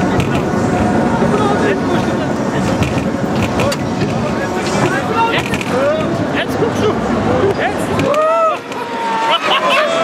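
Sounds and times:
roller coaster rumble: 0.0 - 9.2.

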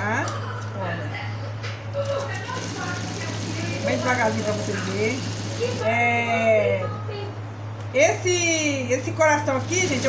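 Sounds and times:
faint voices: 0.3 - 7.4
sewing machine motor humming: 2.0 - 5.9, 9.3 - 10.0.

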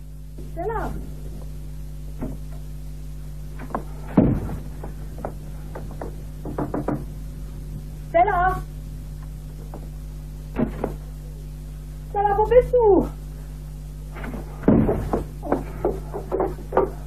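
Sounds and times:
low hum: 0.0 - 17.0
heavy thump: 3.6 - 7.1, 14.2 - 17.0
knocks: 3.6 - 7.1, 14.2 - 17.0.

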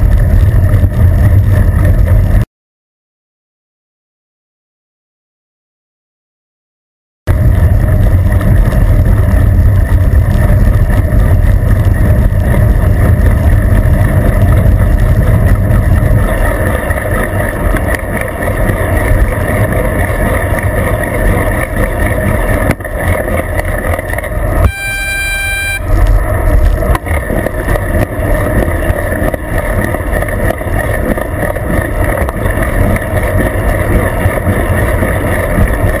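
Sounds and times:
heavy wind noise: 0.0 - 2.4, 7.3 - 36.0
road rumble: 0.0 - 2.5, 7.3 - 36.0
horn sounding: 24.6 - 26.0.

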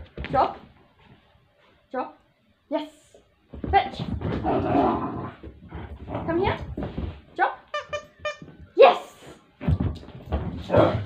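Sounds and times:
puppy paws thudding on carpet: 3.5 - 4.6, 5.4 - 7.4, 9.6 - 11.0.

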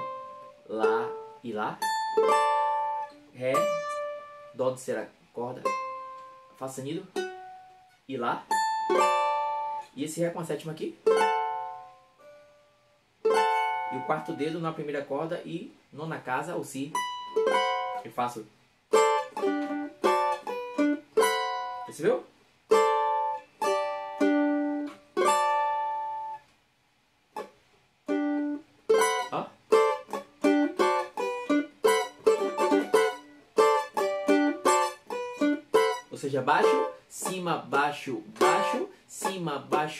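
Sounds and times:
small guitar chord strum: 0.0 - 4.6, 11.0 - 14.4, 27.4 - 37.3, 38.3 - 39.8.

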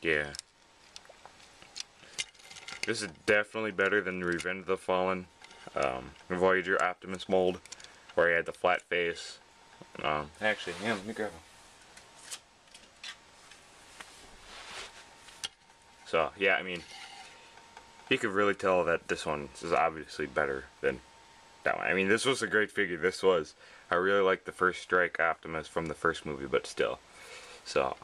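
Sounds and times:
plastic rubbing scrape: 10.5 - 11.4.

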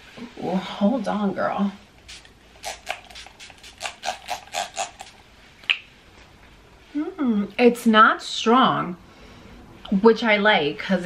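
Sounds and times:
pump spray bottle hissing: 2.0 - 5.2.

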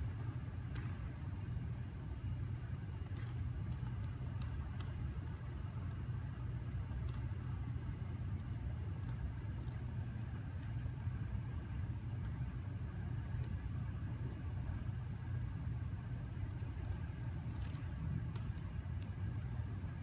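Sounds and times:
ventilation rumble: 0.0 - 20.0.

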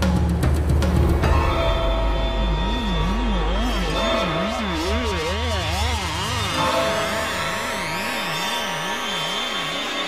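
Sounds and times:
low wavering electronic tone: 1.8 - 9.1.

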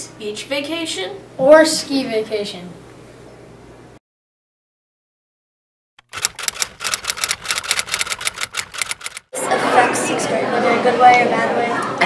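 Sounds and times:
rapid typing on keys: 6.0 - 9.3
woman speaking: 9.4 - 12.0.

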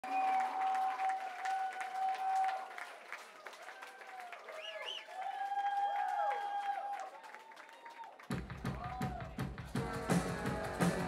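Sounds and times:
whistles: 0.0 - 2.6, 4.5 - 6.7
audience applauding and cheering: 0.0 - 11.0.

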